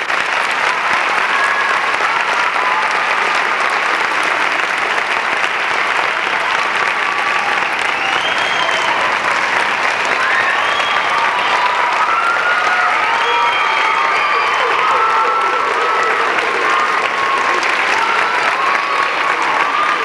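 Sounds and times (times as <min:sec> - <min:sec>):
audience applauding: 0:00.0 - 0:20.0
voices calling out: 0:10.2 - 0:20.0.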